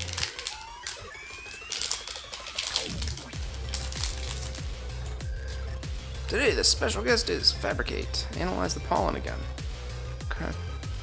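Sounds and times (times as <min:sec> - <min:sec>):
foil wrapper tearing and crinkling: 0:00.0 - 0:04.7
trading cards sliding and flicking: 0:00.0 - 0:04.7
electronic music with bass beat: 0:00.0 - 0:11.0.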